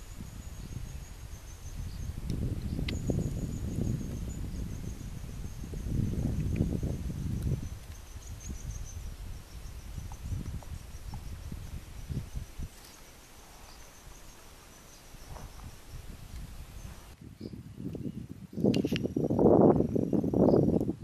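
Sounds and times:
high-pitched insect chirring: 0:00.0 - 0:17.6.

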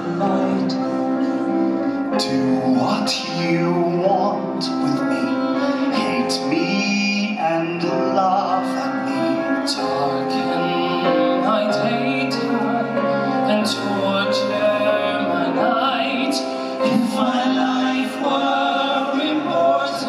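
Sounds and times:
instrumental accompaniment: 0:00.0 - 0:20.0
man singing into a microphone: 0:00.0 - 0:20.0.

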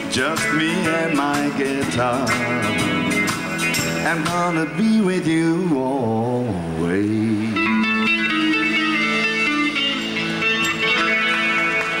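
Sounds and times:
electric guitar bright notes: 0:00.0 - 0:04.8, 0:07.5 - 0:12.0
live band playing: 0:00.0 - 0:05.4, 0:06.8 - 0:12.0.

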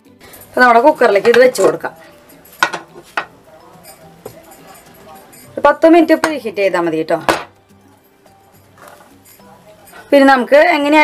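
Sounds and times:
woman talking: 0:00.6 - 0:02.0, 0:05.6 - 0:07.4, 0:10.0 - 0:11.0.

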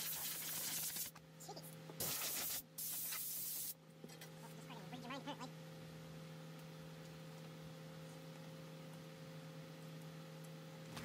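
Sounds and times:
spraying hiss: 0:00.0 - 0:01.1, 0:02.0 - 0:03.8.

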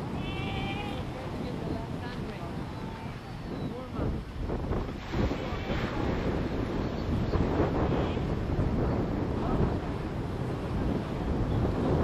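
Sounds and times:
surf: 0:00.0 - 0:12.0
wind: 0:00.0 - 0:12.0.

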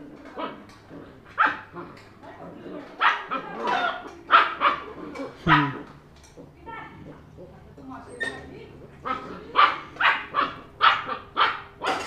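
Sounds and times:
puppies barking and yipping: 0:00.2 - 0:07.0, 0:08.1 - 0:12.0.

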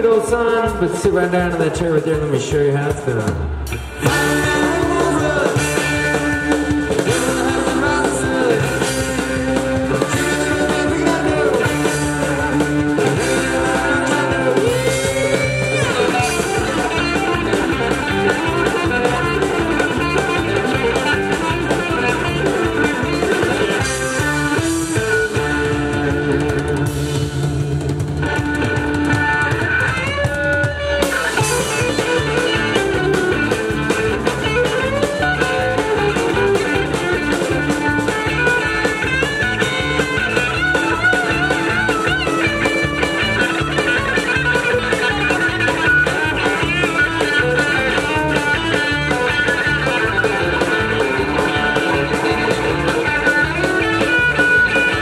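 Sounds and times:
drum kit steady beat: 0:00.0 - 0:55.0
electric bass: 0:00.0 - 0:55.0
electric guitar lead: 0:00.0 - 0:55.0.

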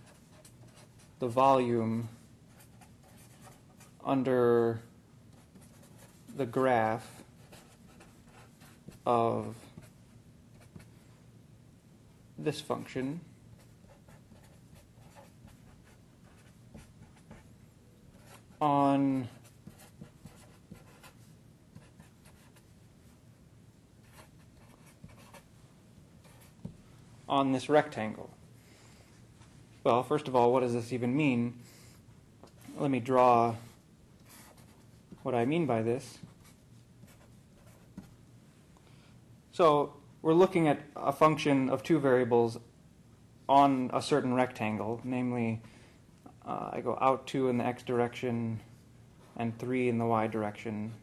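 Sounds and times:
marker scratching on paper: 0:05.4 - 0:06.4, 0:07.0 - 0:10.0, 0:13.6 - 0:17.5, 0:19.2 - 0:22.6, 0:24.0 - 0:25.5, 0:26.2 - 0:26.6, 0:34.3 - 0:35.2, 0:36.2 - 0:38.1.

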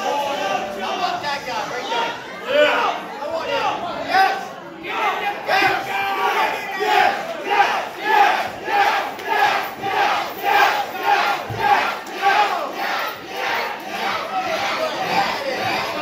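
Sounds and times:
crowd chanting in unison: 0:01.8 - 0:16.0.

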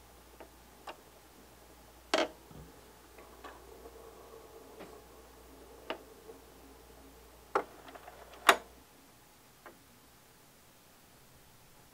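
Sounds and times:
faint low hum: 0:00.0 - 0:11.9.

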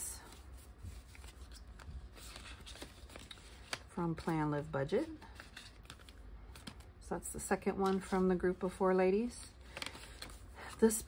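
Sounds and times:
paper rustling: 0:00.2 - 0:06.9, 0:09.6 - 0:10.8.

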